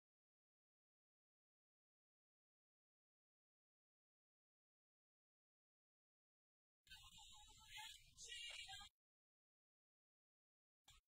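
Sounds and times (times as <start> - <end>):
choir singing: 6.9 - 8.9.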